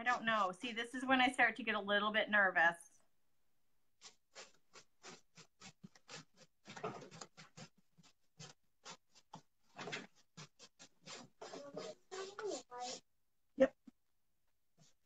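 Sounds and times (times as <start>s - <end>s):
paintbrush strokes: 4.0s - 13.1s, 14.7s - 15.0s.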